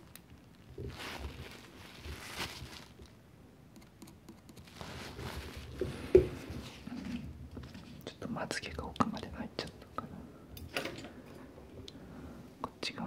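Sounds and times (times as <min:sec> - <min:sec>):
man whispering: 0:08.1 - 0:10.3, 0:12.6 - 0:13.0.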